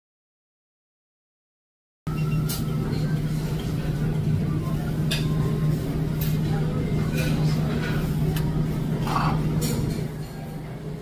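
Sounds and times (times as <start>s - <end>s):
low mechanical hum: 2.1s - 11.0s.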